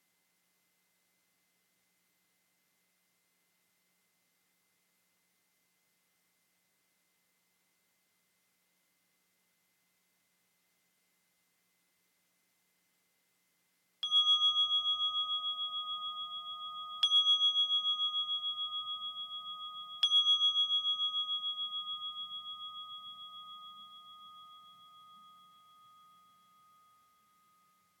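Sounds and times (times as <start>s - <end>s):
meditation bell ringing: 14.0s - 28.0s.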